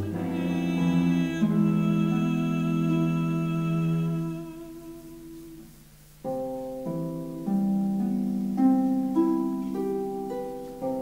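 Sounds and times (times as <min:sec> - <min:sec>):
women's choir humming: 0:00.0 - 0:05.8.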